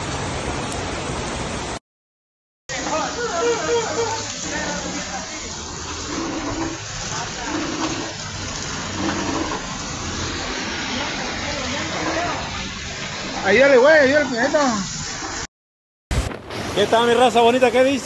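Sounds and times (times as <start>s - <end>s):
floodwater rushing down street: 0.0s - 1.8s, 2.7s - 15.5s, 16.1s - 18.0s.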